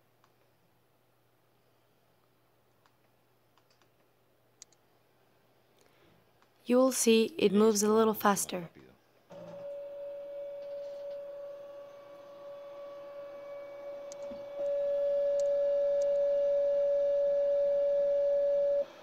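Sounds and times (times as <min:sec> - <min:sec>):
stepper motors whining: 0:09.4 - 0:19.0.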